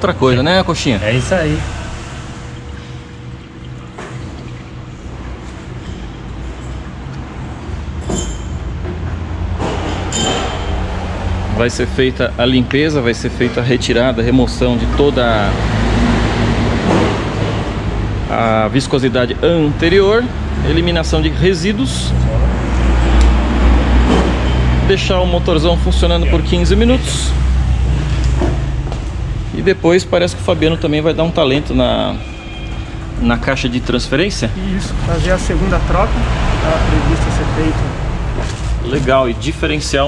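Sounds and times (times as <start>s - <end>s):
low mechanical hum: 0.0s - 40.0s.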